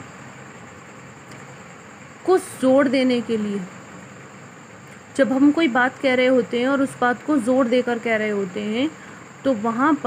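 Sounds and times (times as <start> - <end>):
background hum and hiss: 0.0 - 10.0
faint high whine: 0.0 - 10.0.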